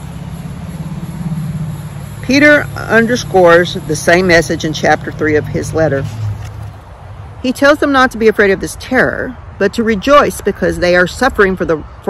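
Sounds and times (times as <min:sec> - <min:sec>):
low steady rumble: 0:00.0 - 0:08.4.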